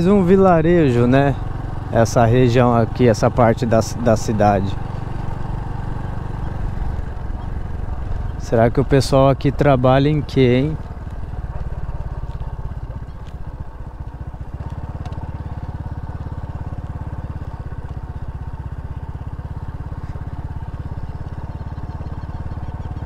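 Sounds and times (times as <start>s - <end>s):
motor scooter engine putter: 10.8s - 23.0s.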